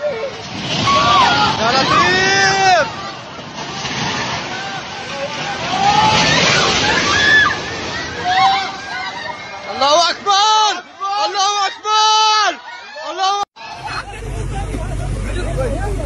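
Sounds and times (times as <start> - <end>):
people shouting in alarm: 0.0 - 3.3, 4.5 - 14.1
building collapsing rushing noise: 0.0 - 10.3.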